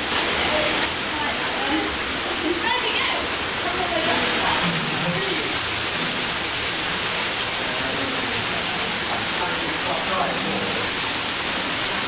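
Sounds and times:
cave stream water rushing: 0.0s - 12.0s.

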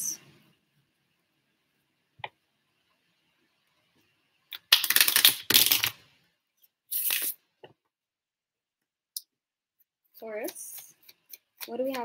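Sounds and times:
cards being shuffled: 4.6s - 6.0s, 6.9s - 7.4s.

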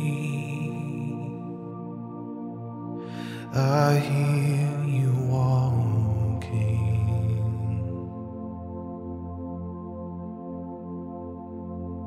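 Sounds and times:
person singing wordless held notes: 0.0s - 1.5s, 3.2s - 8.1s
sustained keyboard chords: 0.0s - 12.0s.

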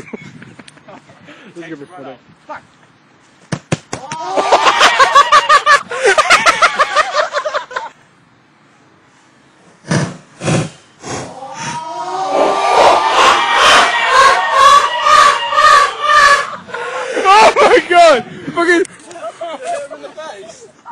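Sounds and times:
dull thumps: 3.4s - 4.1s
young men yelling and laughing: 4.0s - 8.0s, 11.3s - 20.9s.

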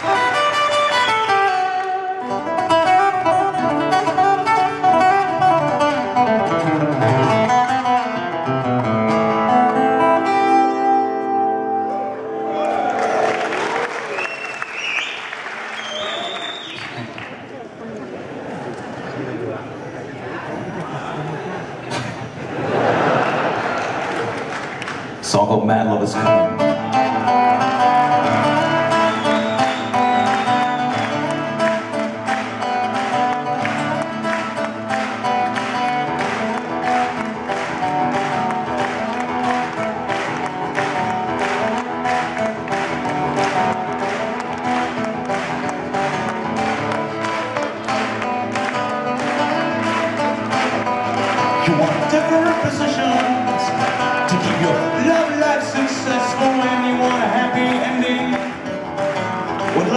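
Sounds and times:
rock band playing live: 0.0s - 13.5s, 26.0s - 59.9s.

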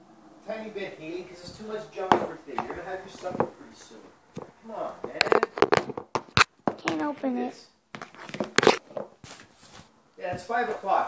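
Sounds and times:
person making unclear sounds: 1.3s - 8.8s
handling clicks knocks and rustles: 1.4s - 7.4s.

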